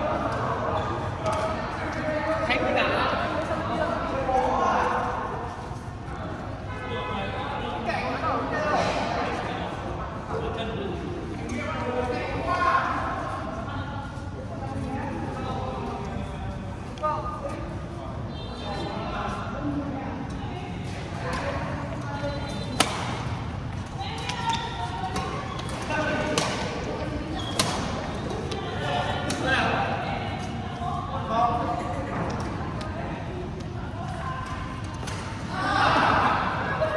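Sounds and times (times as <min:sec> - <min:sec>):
background chatter of voices: 0:00.0 - 0:36.9
racket smacking shuttlecock: 0:22.8 - 0:23.3, 0:24.2 - 0:26.8, 0:27.4 - 0:28.6.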